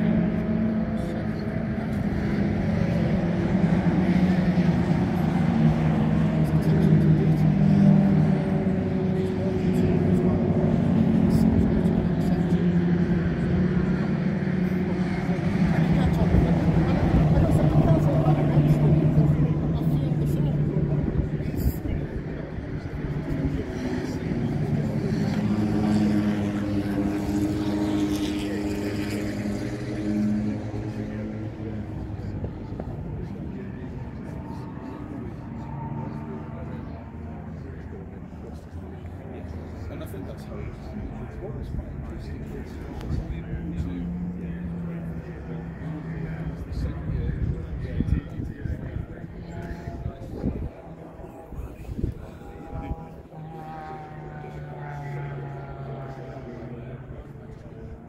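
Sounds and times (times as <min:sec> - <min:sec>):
car engines humming: 0:00.0 - 0:58.0
people talking: 0:00.0 - 0:58.0.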